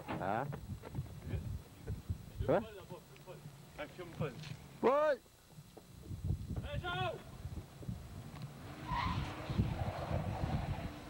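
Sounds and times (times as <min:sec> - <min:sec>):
car driving past: 0:08.5 - 0:11.0.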